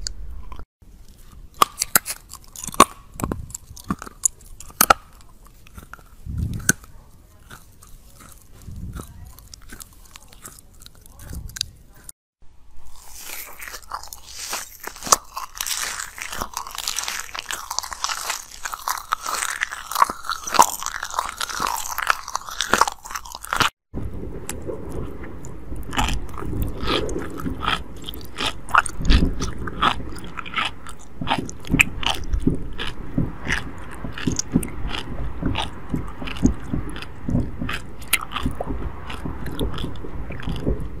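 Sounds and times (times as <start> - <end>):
ice crunching and chewing: 0.0 - 12.1, 12.8 - 41.0.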